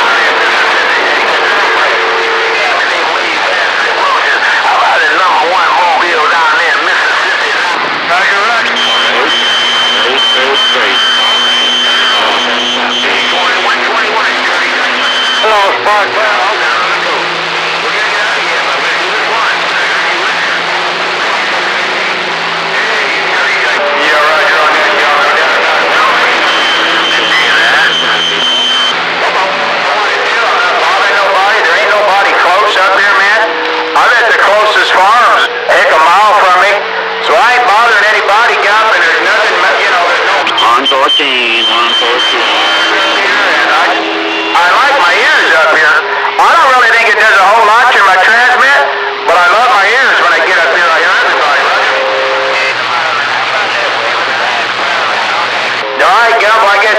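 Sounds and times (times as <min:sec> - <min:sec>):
garbled radio voices: 0:00.0 - 0:56.9
radio whistles: 0:00.0 - 0:56.9.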